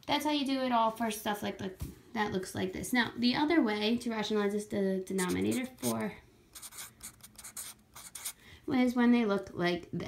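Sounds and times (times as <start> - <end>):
marker scratching on paper: 5.2 - 8.4.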